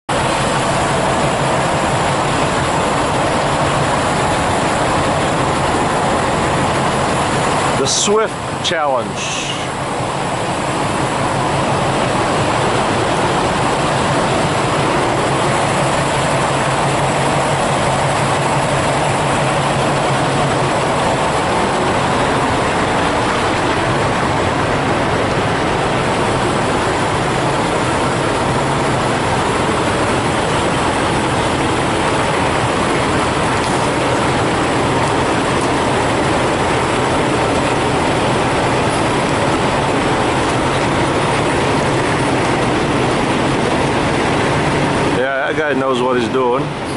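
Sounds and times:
diesel truck engine running: 0.1 - 46.9.

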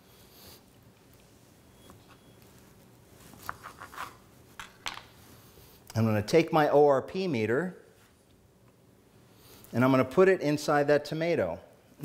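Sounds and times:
faint handling sounds: 0.5 - 5.9.

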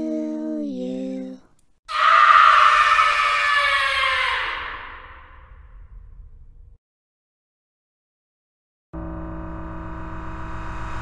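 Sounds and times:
person singing lullaby softly: 0.0 - 1.6
woman screaming: 1.9 - 5.2
faint low rumble: 5.4 - 6.8.

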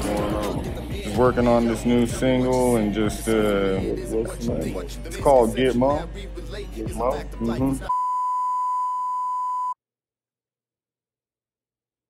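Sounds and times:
high-pitched censor bleep: 7.9 - 9.8.

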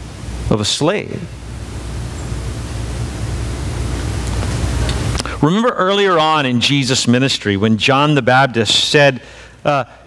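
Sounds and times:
low electrical hum: 0.0 - 10.0
steady hiss: 0.0 - 10.0.

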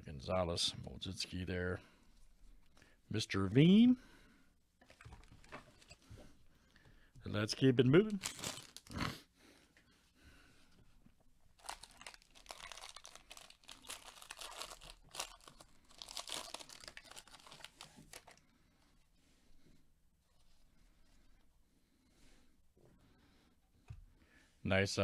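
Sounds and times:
foil wrapper tearing and crinkling: 8.2 - 9.0, 11.6 - 18.4
cards rustling: 11.6 - 18.4.

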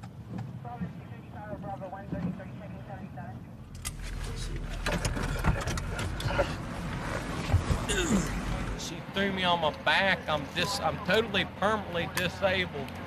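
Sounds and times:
rush of outside noise: 0.0 - 13.0
muffled voices: 0.6 - 13.0
car engine running low: 3.6 - 9.9.

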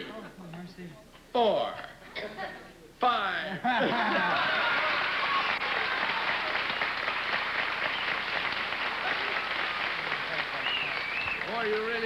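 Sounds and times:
audience applauding: 4.3 - 12.0.

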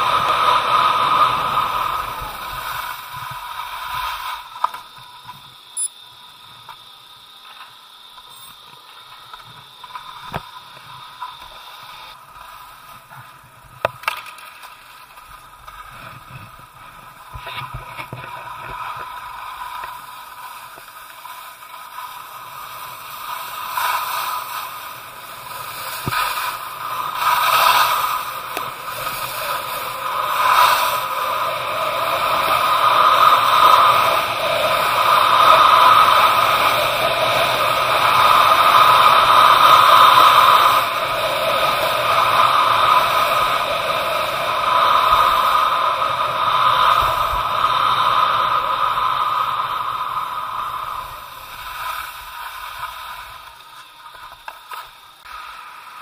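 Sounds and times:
skis carving on packed snow: 0.0 - 56.0.

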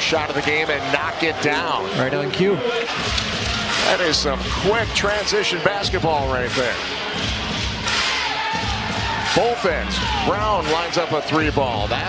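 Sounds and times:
crowd noise: 0.0 - 12.0
music over arena pa: 0.0 - 12.0.

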